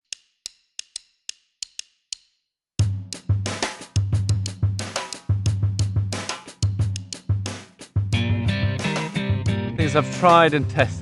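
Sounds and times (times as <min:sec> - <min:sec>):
sharp ticking clicks: 0:00.0 - 0:02.4, 0:04.2 - 0:04.6, 0:06.6 - 0:07.3.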